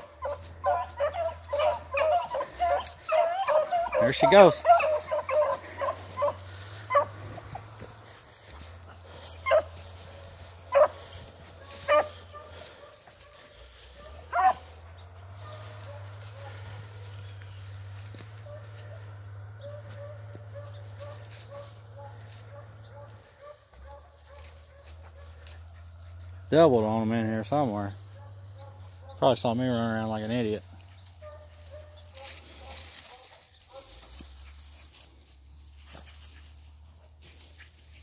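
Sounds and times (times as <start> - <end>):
dog baying: 0.0 - 30.1, 30.8 - 37.4.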